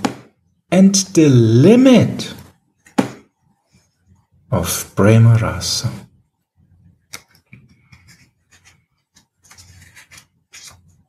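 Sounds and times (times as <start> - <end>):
rustling of object being handled: 7.2 - 11.0.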